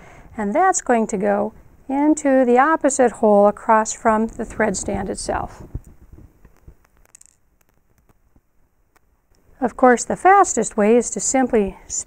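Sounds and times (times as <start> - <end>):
faint metal clicks and scrapes: 5.6 - 8.4.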